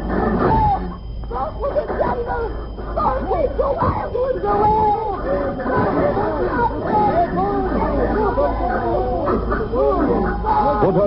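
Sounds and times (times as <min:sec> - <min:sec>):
many voices chattering: 0:00.0 - 0:11.0.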